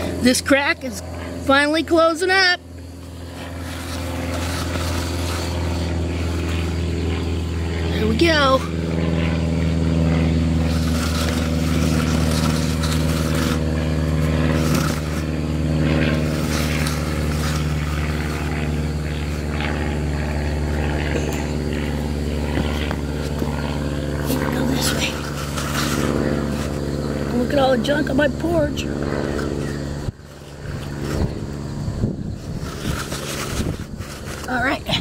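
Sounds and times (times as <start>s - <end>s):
motor humming: 0.0s - 35.0s
scraping and rustling noises: 3.2s - 7.0s, 10.4s - 27.3s, 32.3s - 35.0s.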